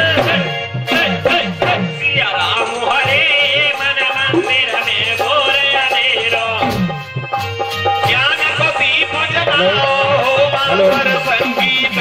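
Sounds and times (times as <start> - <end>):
hand drum: 0.0 - 12.0
man singing ornamented notes: 0.0 - 12.0.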